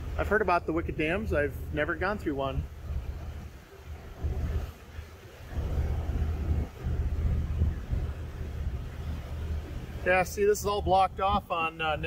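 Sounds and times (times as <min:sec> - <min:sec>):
boat engines rumbling: 0:00.0 - 0:12.0
wind buffeting microphone: 0:00.0 - 0:12.0.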